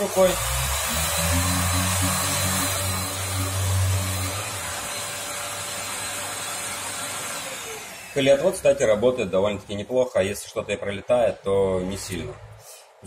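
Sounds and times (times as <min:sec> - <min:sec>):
orbital sander whirring: 0:00.0 - 0:09.1
low hum: 0:00.5 - 0:04.8.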